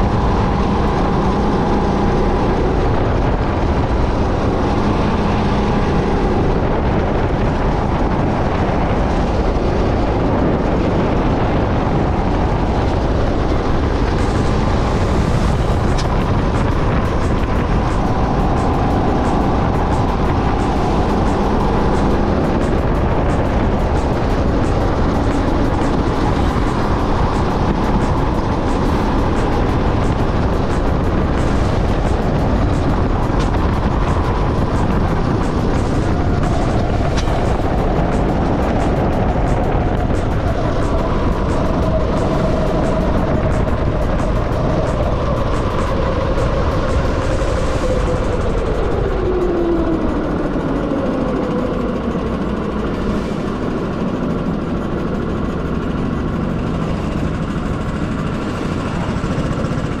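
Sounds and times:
go-kart engine: 0.0s - 60.0s
wind rush on camera: 0.0s - 60.0s.

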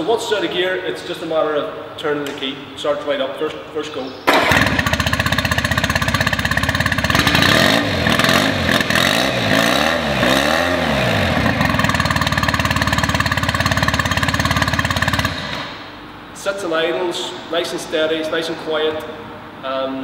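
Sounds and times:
outboard motor idling: 4.4s - 9.0s, 11.4s - 15.6s.

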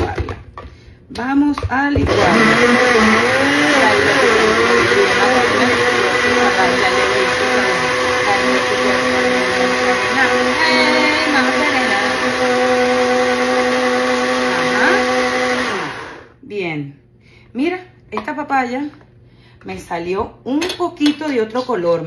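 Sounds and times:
blender motor running: 2.0s - 16.4s.

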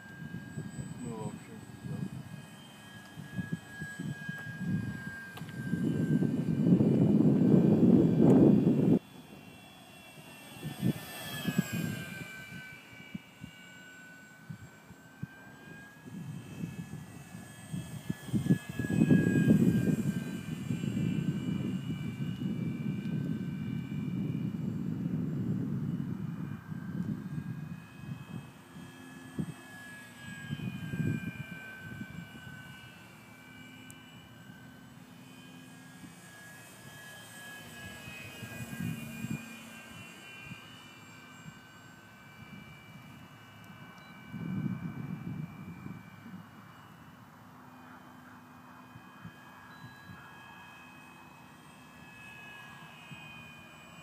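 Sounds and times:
model plane motor whining: 0.0s - 54.0s.

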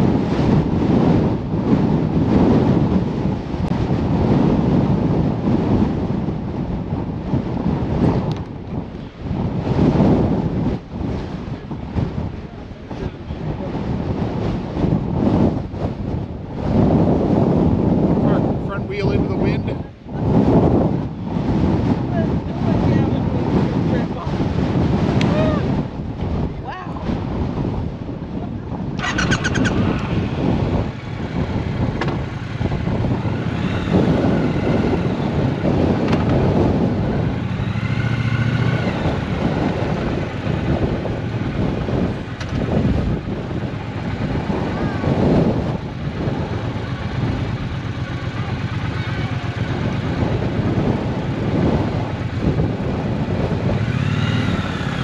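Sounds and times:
motorcycle engine at low revs: 0.0s - 55.0s
wind buffeting microphone: 0.0s - 55.0s.

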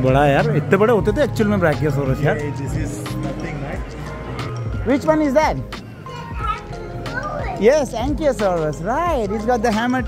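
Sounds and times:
background music: 0.0s - 10.0s
child exclaiming: 6.0s - 7.7s.

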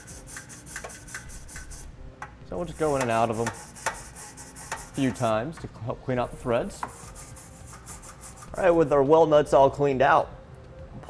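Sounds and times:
wire brush scrubbing metal: 0.0s - 1.9s, 2.6s - 5.4s, 6.4s - 9.0s.

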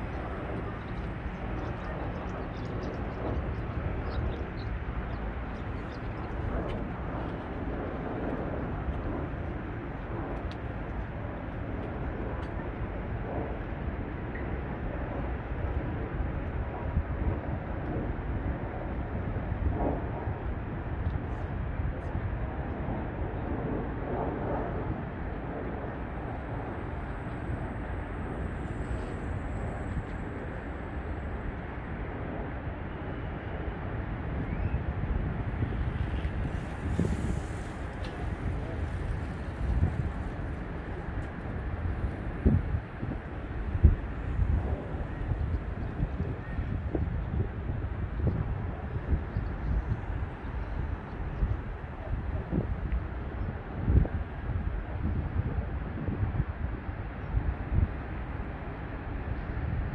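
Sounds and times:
city traffic rumble: 0.0s - 55.0s.

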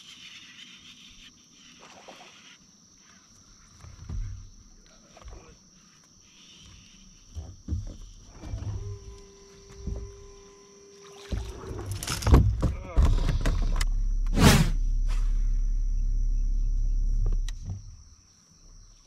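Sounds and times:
steady hum: 8.3s - 18.8s
loud whoosh: 13.9s - 17.2s.

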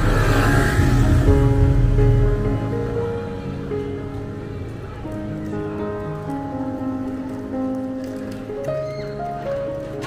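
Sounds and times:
slow piano music: 0.0s - 10.0s.

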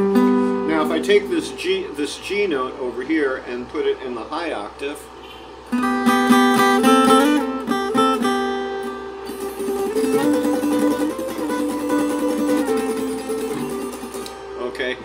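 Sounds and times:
acoustic guitar picking intervals: 0.0s - 2.1s, 5.2s - 14.8s.

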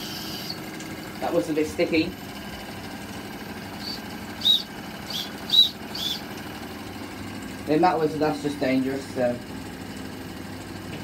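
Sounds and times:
small steam engines running: 0.0s - 11.0s
steam engine whistle toots: 3.8s - 6.2s.

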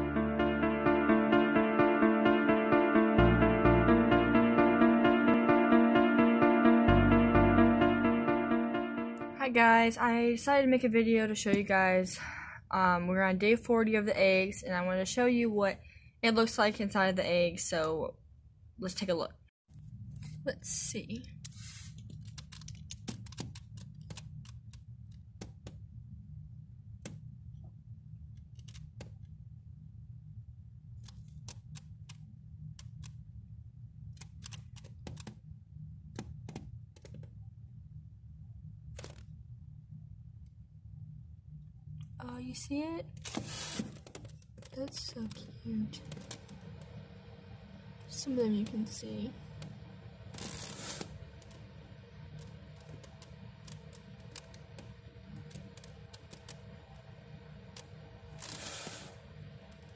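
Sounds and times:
steady low hum: 44.4s - 59.9s.

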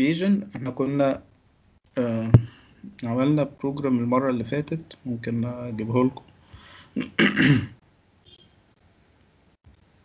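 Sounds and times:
person clearing throat: 7.0s - 7.8s.

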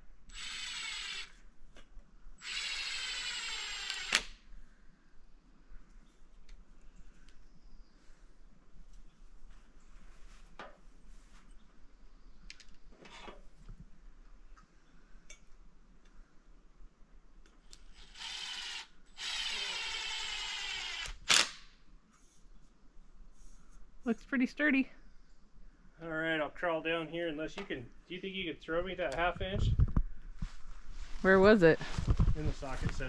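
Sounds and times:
power drill driving screw into wood: 0.3s - 1.4s, 2.4s - 4.4s, 17.7s - 21.7s.

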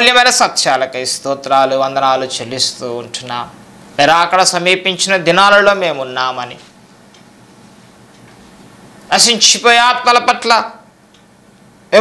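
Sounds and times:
faint background hiss: 0.0s - 12.0s.

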